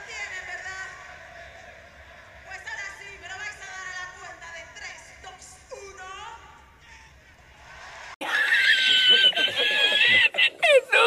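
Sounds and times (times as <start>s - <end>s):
man laughing in a wheeze: 8.2s - 11.0s.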